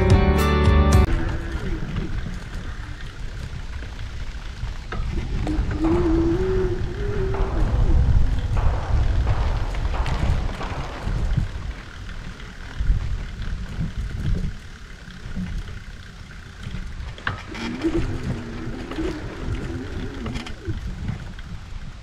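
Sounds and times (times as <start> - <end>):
bicycle tyres rolling on sand: 1.1 - 22.0
wind buffeting microphone: 1.1 - 22.0.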